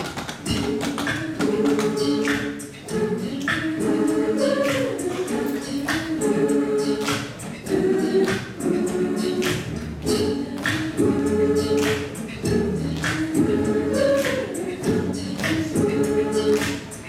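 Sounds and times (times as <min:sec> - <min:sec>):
a cappella choir singing: 0:00.3 - 0:17.0.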